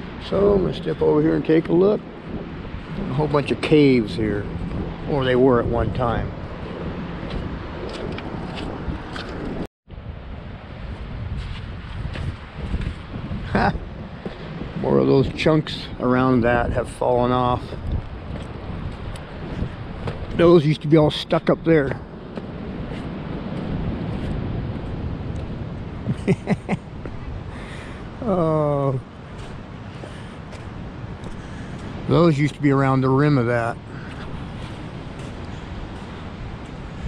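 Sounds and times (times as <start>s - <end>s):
wind buffeting microphone: 0.0s - 37.0s
man chuckling: 13.5s - 13.8s, 26.1s - 26.8s.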